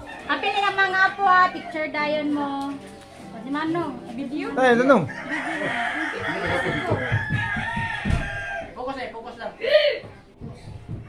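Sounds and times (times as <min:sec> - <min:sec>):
rooster crowing: 0:00.0 - 0:01.6, 0:05.1 - 0:08.8
people talking: 0:00.3 - 0:02.8, 0:05.6 - 0:07.2.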